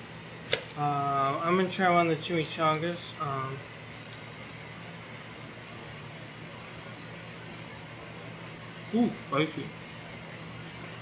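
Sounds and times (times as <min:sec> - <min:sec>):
low hiss of room noise: 0:00.0 - 0:11.0.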